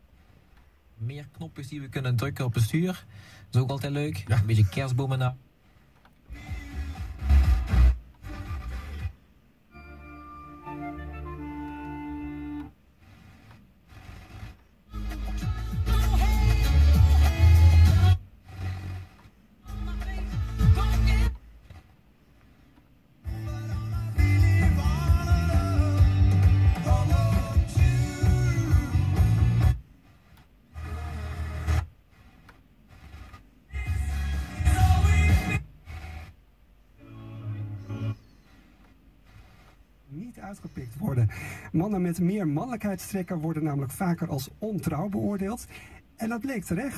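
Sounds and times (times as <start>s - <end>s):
radio stations being tuned: 1.0s - 9.6s, 10.6s - 46.9s.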